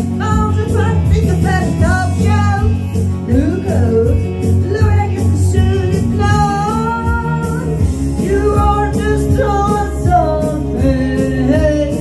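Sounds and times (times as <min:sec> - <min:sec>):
accompanying music: 0:00.0 - 0:12.0
woman singing into microphone: 0:00.0 - 0:12.0.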